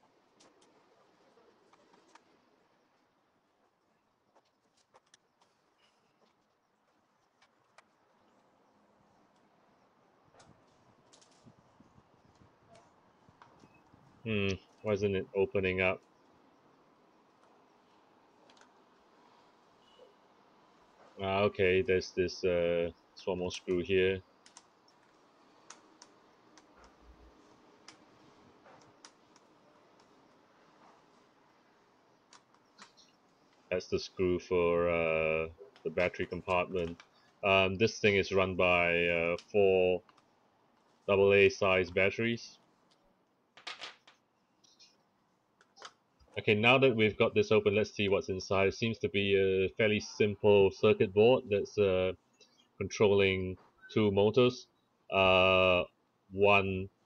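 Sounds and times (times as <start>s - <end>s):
faint plastic clicks and taps: 18.4s - 18.8s, 24.4s - 31.1s, 35.7s - 37.4s, 39.4s - 41.0s, 45.6s - 46.4s.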